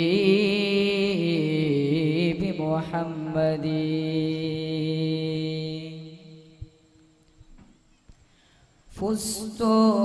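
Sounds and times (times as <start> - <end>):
faint tap: 7.4 - 8.2.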